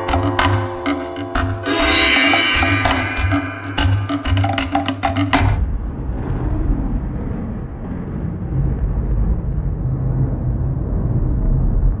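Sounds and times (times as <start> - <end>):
low rumbling noise: 5.6 - 12.0.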